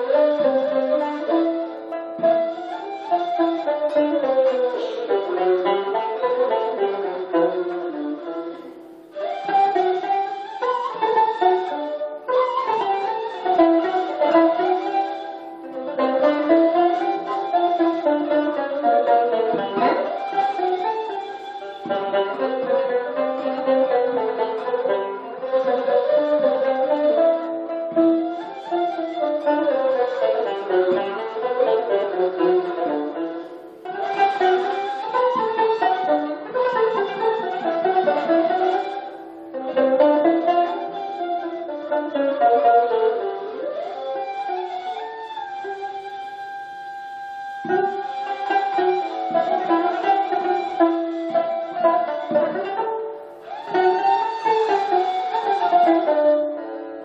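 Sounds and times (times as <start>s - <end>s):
plucked long-necked lute: 0.0s - 57.0s.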